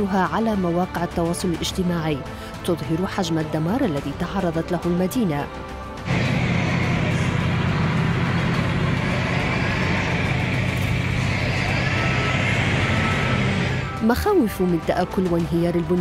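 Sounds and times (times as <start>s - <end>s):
tractor engine running: 6.1s - 14.0s.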